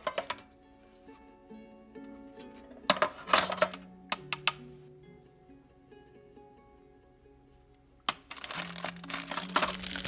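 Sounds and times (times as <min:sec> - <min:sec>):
soft background music: 0:00.0 - 0:10.0
plastic containers clicking: 0:08.1 - 0:10.0.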